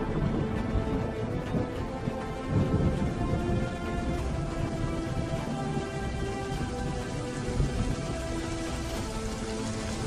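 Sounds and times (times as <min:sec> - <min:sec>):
music: 0:00.0 - 0:10.0
rain: 0:00.0 - 0:10.0.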